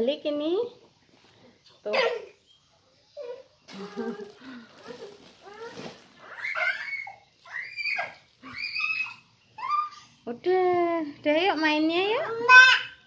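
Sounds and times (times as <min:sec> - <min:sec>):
toddler vocalising: 0:03.2 - 0:10.2, 0:12.2 - 0:13.0.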